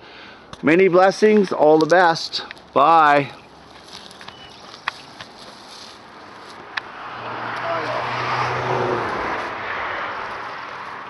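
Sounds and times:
passing vehicle engine: 5.5 - 11.0.

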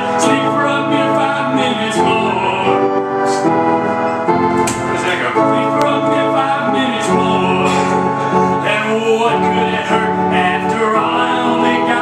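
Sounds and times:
electric organ chords: 0.0 - 12.0.

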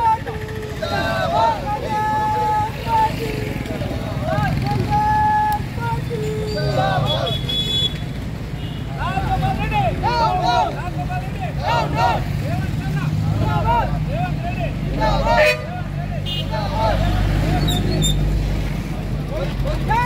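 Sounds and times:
men shouting slogans: 0.0 - 7.5, 8.9 - 18.0, 19.1 - 20.0
vehicle engines humming: 0.0 - 20.0.

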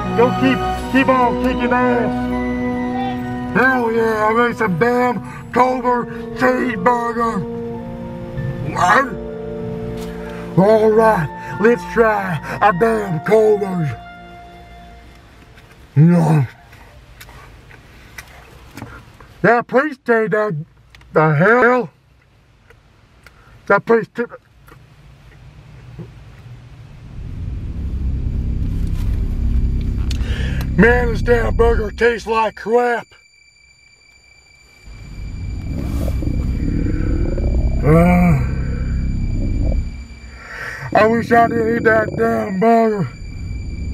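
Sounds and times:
low steady car cabin hum: 0.0 - 18.7, 24.4 - 33.0, 34.7 - 43.9
low rumble inside car: 25.2 - 32.9, 34.9 - 43.9.

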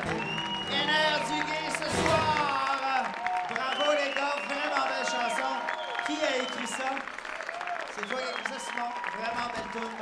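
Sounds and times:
audience clapping: 0.0 - 10.0.

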